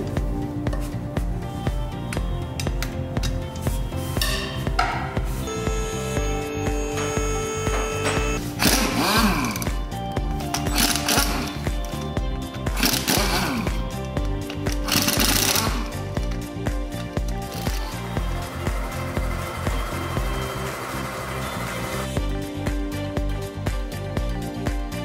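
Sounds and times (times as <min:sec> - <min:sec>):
background music with steady beat: 0:00.0 - 0:25.0
pneumatic impact wrench hammering: 0:06.8 - 0:09.8, 0:10.4 - 0:12.0, 0:12.7 - 0:16.0.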